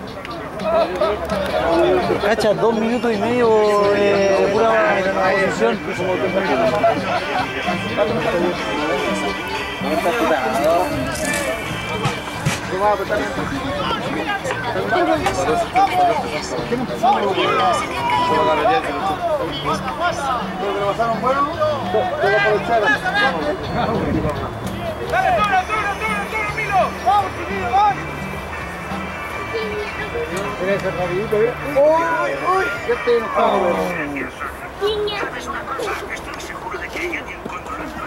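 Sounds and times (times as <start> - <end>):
people talking and calling out: 0.0 - 38.0
steady music-like tones: 0.0 - 38.0
men shouting: 0.5 - 34.3.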